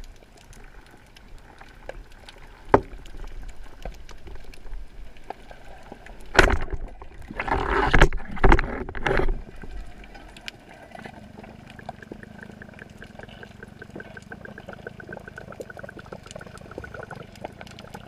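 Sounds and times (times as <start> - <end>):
rushing water: 0.0 - 18.0
underwater water noise: 0.0 - 18.0
sharp knocks underwater: 2.7 - 3.2, 6.3 - 9.6.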